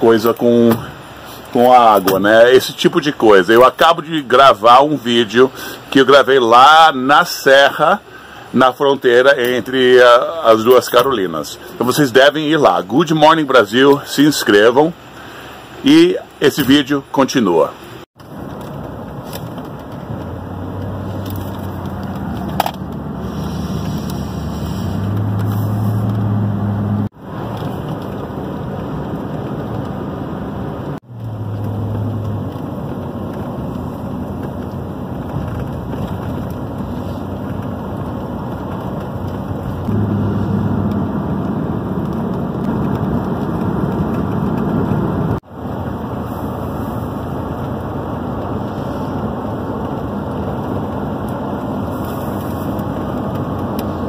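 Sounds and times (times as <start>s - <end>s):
car road and engine noise: 0.0s - 54.0s
low hum: 39.6s - 45.4s.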